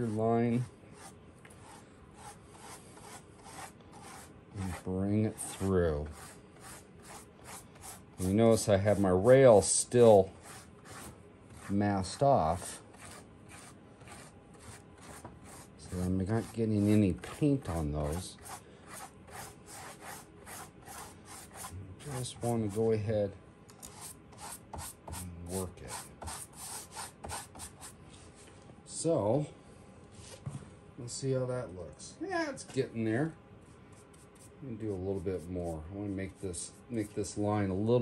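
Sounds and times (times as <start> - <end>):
bristle brush scrubbing surface: 0.0 - 9.8, 10.4 - 22.8.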